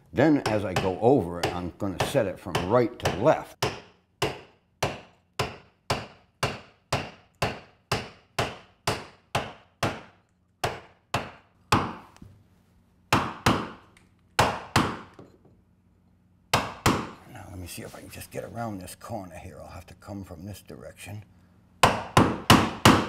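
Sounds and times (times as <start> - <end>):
wooden mallet striking caulking iron: 0.4 - 12.1, 13.1 - 13.8, 14.4 - 15.4, 16.5 - 17.2, 21.8 - 23.0.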